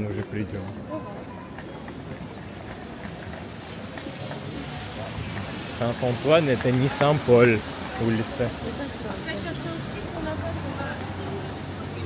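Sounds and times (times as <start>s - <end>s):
faint voices of passers-by: 0.0s - 12.0s
traffic noise on wet street: 0.0s - 12.0s.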